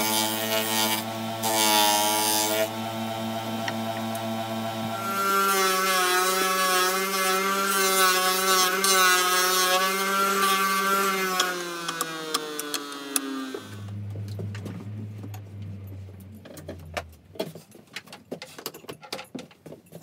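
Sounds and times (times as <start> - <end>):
disc sander motor hum: 0.0 - 6.6, 11.4 - 17.4
wood grinding on sanding disc: 0.0 - 17.3.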